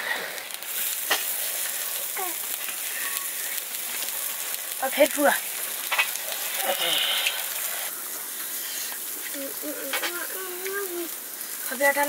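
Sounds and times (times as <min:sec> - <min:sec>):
meat sizzling over charcoal: 0:00.0 - 0:12.0
sharp crackle: 0:00.0 - 0:12.0.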